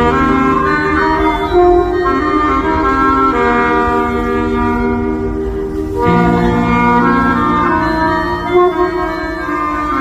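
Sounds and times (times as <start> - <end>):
saxophones holding long note: 0.0 - 10.0.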